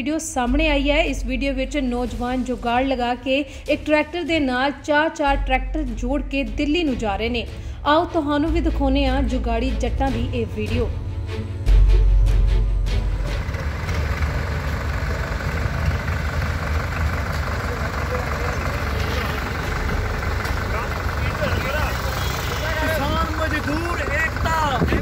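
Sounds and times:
tractor engines rumbling: 7.4 - 25.0
voices: 13.4 - 25.0.

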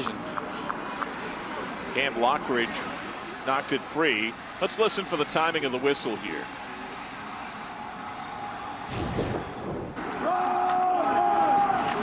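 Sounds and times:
stadium background noise: 0.0 - 12.0.

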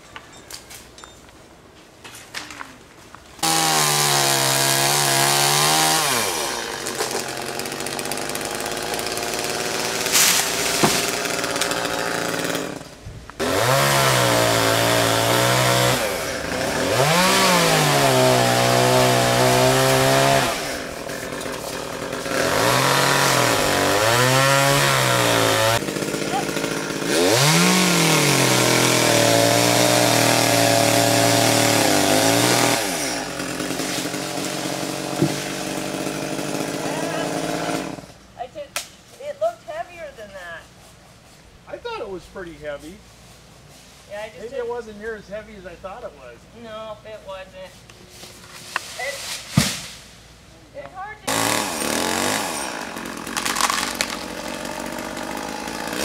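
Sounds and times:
chainsaw revving: 3.4 - 38.1, 51.3 - 56.0.

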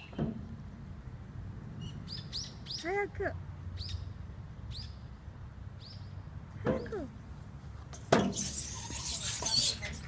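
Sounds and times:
clothes squeaking down metal slide: 8.1 - 10.0.

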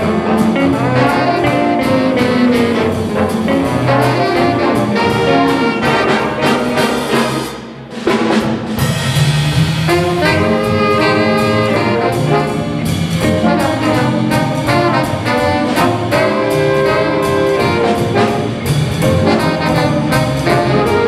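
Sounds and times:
big band jazz playing: 0.0 - 21.0.

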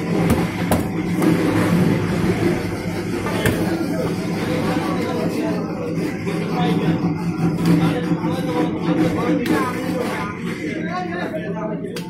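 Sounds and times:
busy background noise: 0.0 - 12.0
loud mechanical hum: 0.0 - 12.0.

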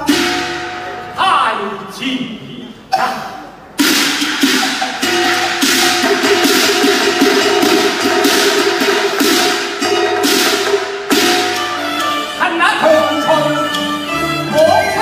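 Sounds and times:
sharp percussion strikes: 0.0 - 1.6, 2.9 - 15.0.

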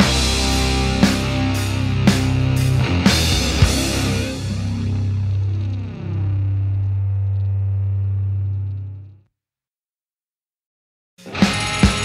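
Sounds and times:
held low note of rock song: 0.0 - 9.0.

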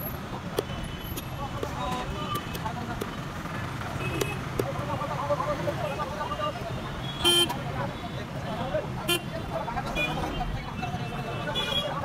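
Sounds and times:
market chatter: 0.0 - 12.0.

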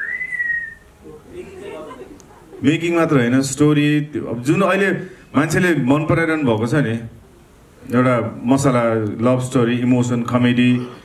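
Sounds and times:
short rising whistle: 0.0 - 0.9.

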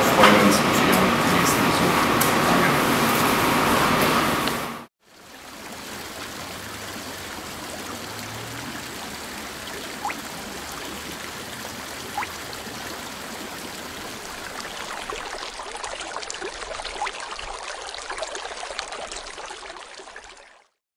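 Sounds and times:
flowing water rushing: 0.0 - 20.8
rising water drop plinks: 6.5 - 13.0, 13.6 - 20.7.

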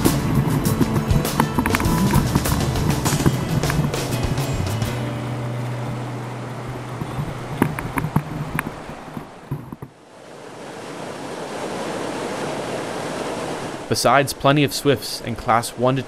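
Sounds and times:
whitewater rushing: 0.0 - 16.0.

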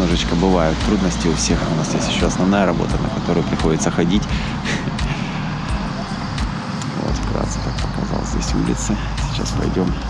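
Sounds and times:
rumble of traffic: 0.0 - 10.0.

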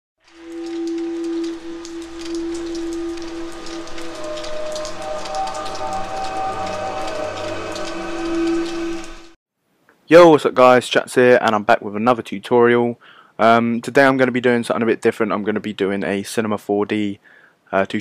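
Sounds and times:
dense rain-like crackle: 0.2 - 9.4
long held synth note: 0.2 - 9.4
higher synth notes: 0.4 - 9.4.

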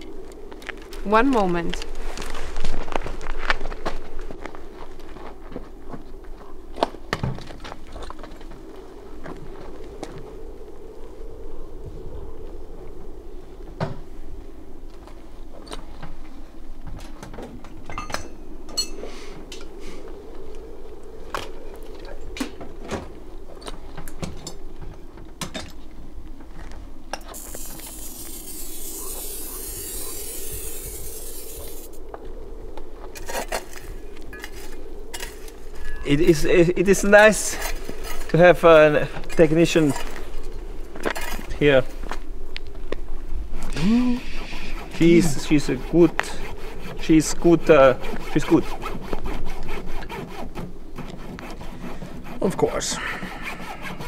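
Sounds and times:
steady low hum: 0.0 - 54.0
metal tools clinking and scraping: 17.8 - 19.7, 33.2 - 36.2, 37.3 - 40.2
hiss: 27.3 - 32.0, 43.7 - 45.0.

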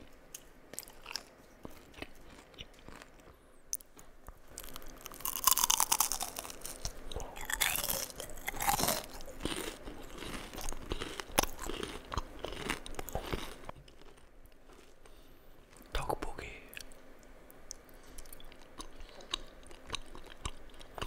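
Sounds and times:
crunchy food chewing: 0.0 - 15.9, 16.7 - 21.0.

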